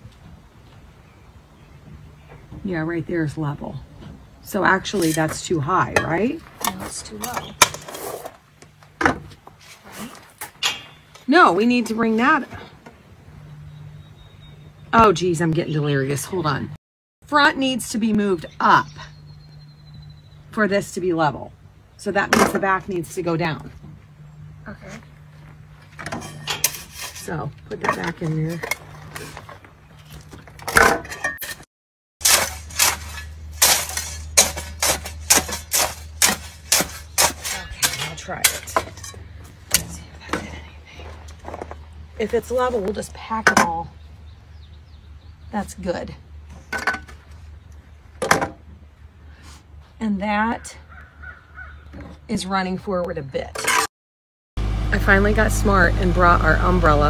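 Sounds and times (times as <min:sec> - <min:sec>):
hand tools scraping stone and gravel: 0:04.6 - 0:08.4, 0:25.8 - 0:31.6, 0:32.2 - 0:43.8, 0:53.4 - 0:53.9
low steady hum: 0:54.6 - 0:57.0.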